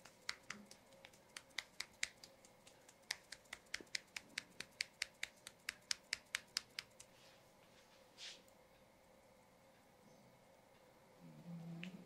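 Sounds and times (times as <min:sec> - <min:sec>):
massage tool rapid clicking: 0:00.0 - 0:07.1.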